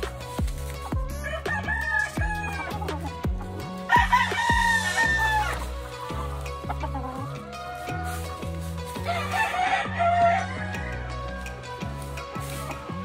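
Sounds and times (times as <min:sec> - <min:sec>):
background music with steady beat: 0:00.0 - 0:13.0
rooster crowing: 0:01.1 - 0:02.8, 0:03.9 - 0:05.6, 0:07.2 - 0:08.4, 0:09.0 - 0:11.5.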